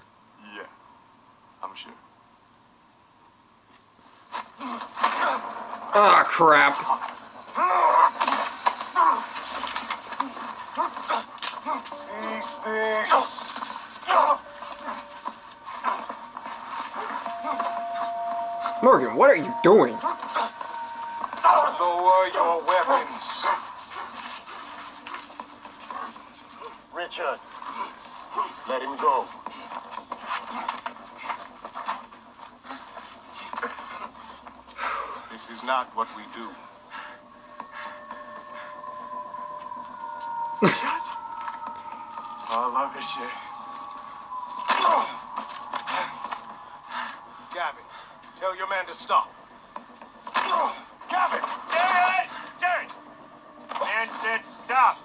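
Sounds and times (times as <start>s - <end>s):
background score notes: 5.0s - 8.1s, 11.4s - 23.2s, 36.2s - 48.4s.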